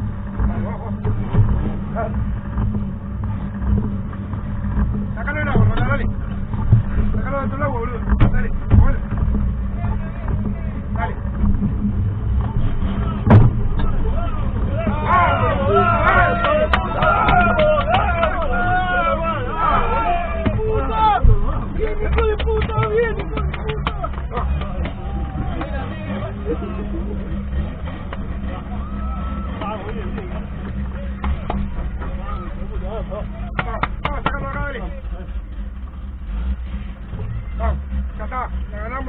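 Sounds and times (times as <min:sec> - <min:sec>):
knocks and rattles: 0:00.0 - 0:39.0
race car engine under load: 0:00.0 - 0:39.0
voices: 0:00.0 - 0:39.0
knocks: 0:13.2 - 0:14.0, 0:33.5 - 0:34.7.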